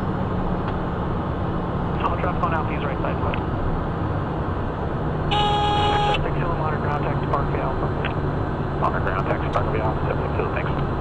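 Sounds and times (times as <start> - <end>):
cockpit hum in flight: 0.0 - 11.0.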